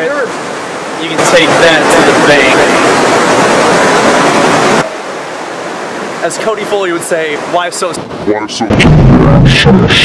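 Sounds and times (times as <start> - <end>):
river water rushing: 0.0 - 8.4.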